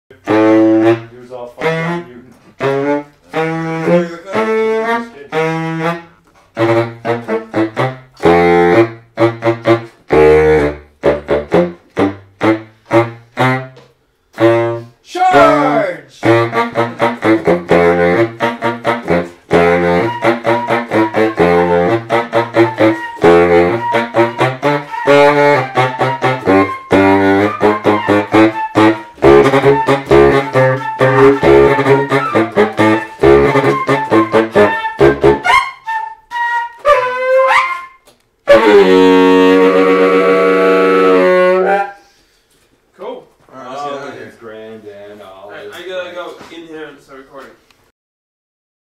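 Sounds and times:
saxophone staccato riff: 0.1 - 42.2.

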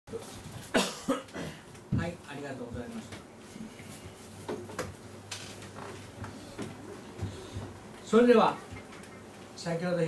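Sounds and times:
person coughing: 0.7 - 1.6.

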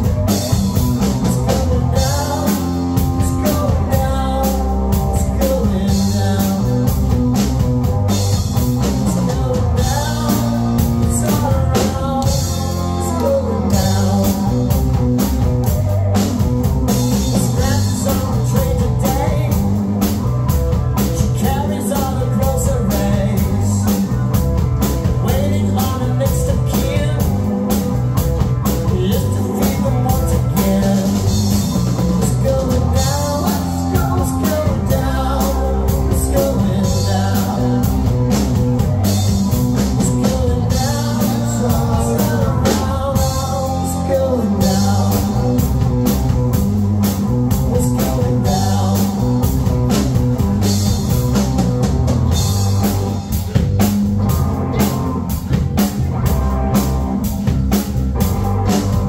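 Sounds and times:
drum kit: 0.0 - 59.0
electric bass: 0.0 - 59.0
electric guitar: 0.0 - 59.0.

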